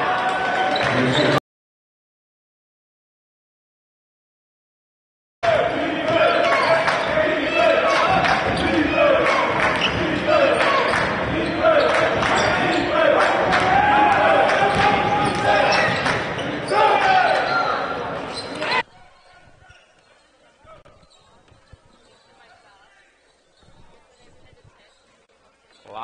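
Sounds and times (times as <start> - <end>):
voices calling out: 5.4 - 22.7.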